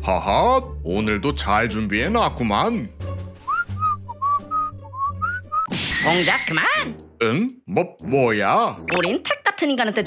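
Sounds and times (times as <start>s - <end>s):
soft background music: 0.0s - 10.0s
whistled tune: 3.4s - 5.7s.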